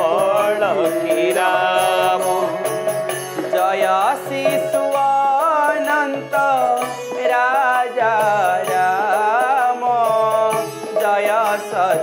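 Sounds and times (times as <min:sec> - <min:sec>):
harmonium: 0:00.0 - 0:12.0
men singing a chant: 0:00.0 - 0:12.0.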